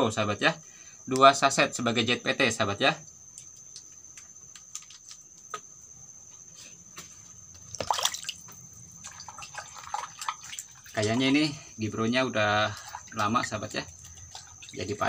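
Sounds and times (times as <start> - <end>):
liquid dripping and splashing: 3.0 - 5.6, 7.5 - 11.6, 12.4 - 15.0.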